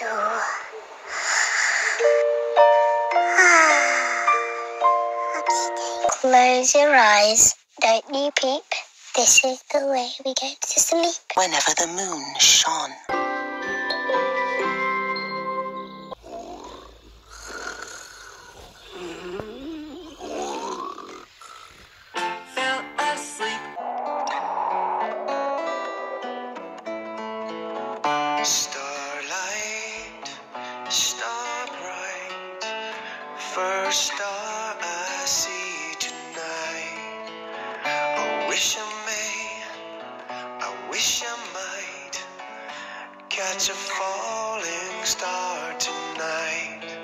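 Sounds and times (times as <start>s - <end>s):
cartoon snoring: 3.3s - 4.6s, 16.2s - 22.0s, 23.7s - 26.6s.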